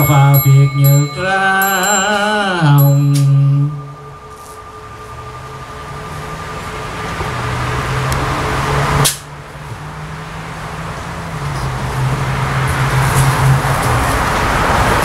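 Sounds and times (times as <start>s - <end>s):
small bell ringing: 0.0s - 8.4s
monks chanting: 0.0s - 8.8s
steady noise: 0.0s - 9.6s.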